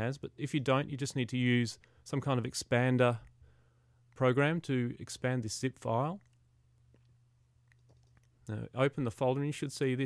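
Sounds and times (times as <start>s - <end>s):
low steady hum: 0.0s - 10.0s
person speaking: 4.1s - 7.2s, 7.9s - 10.0s.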